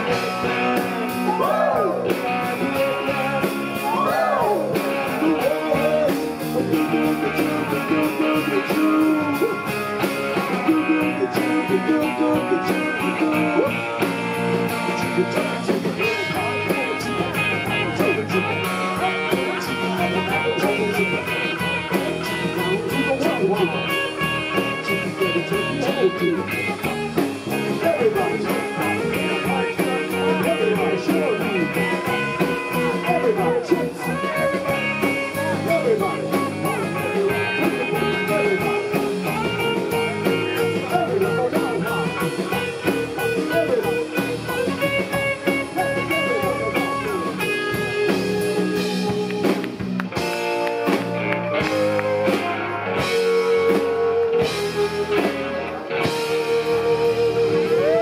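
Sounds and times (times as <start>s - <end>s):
bass: 0.0s - 58.0s
drum kit with cymbals: 0.0s - 58.0s
electric guitars: 0.0s - 58.0s.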